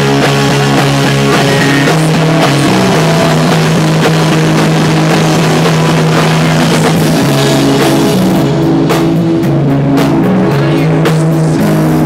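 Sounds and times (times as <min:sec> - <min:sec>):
distorted electric guitars: 0:00.0 - 0:12.0
drums hitting: 0:00.0 - 0:12.0.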